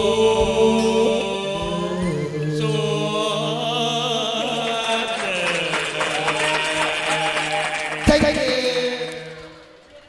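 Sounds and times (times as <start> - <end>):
song music: 0.0 - 9.7
audience clapping along: 4.4 - 9.3.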